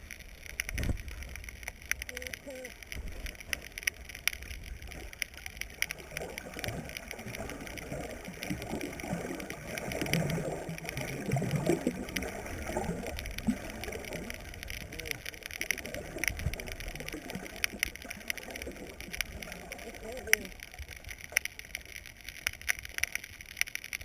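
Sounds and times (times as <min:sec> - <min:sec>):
faint clicks: 0:00.0 - 0:24.0
underwater gurgling and churning: 0:00.0 - 0:24.0.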